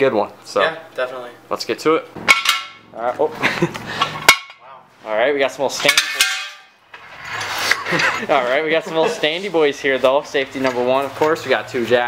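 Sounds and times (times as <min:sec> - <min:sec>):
metal jack stand clanging on concrete: 0:02.3 - 0:02.8, 0:04.0 - 0:04.6, 0:05.8 - 0:08.2
person laughing: 0:03.3 - 0:04.2, 0:07.8 - 0:09.3.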